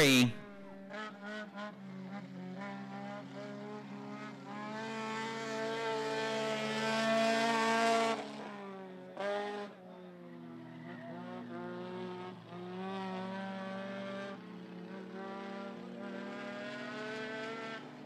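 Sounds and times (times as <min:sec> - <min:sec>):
race car engines passing: 0:00.0 - 0:18.0.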